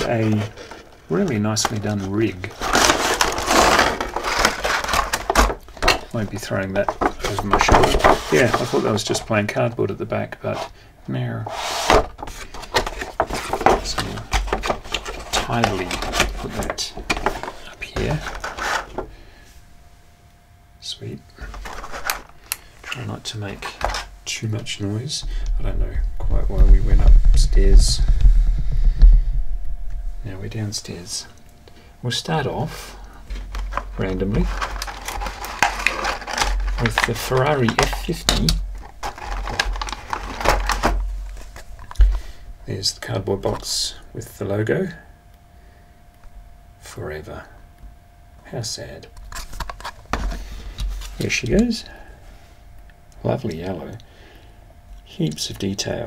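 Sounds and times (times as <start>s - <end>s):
scraping handling noises: 0.0s - 9.3s, 11.4s - 19.2s, 21.3s - 24.2s, 32.8s - 42.2s
cardboard and plastic rustling: 0.0s - 9.4s, 11.5s - 19.2s, 21.4s - 24.2s, 32.7s - 42.4s, 49.2s - 51.8s
low bump: 25.2s - 30.6s.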